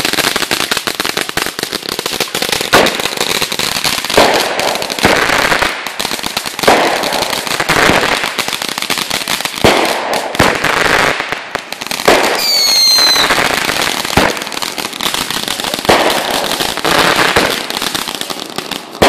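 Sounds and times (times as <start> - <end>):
fireworks bangs: 0.0 - 19.0
fireworks crackling: 0.0 - 19.0
short descending whistle: 12.4 - 13.3.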